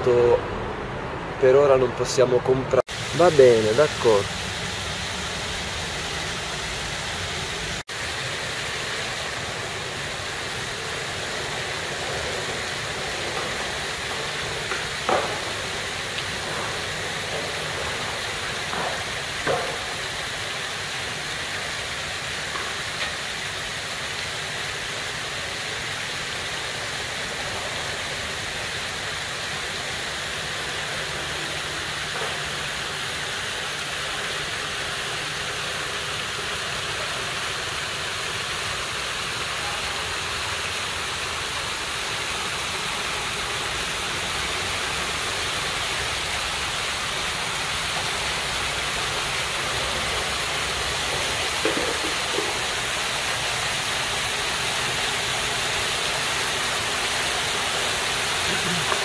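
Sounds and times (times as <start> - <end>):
fountain water splashing: 0.0 - 59.0.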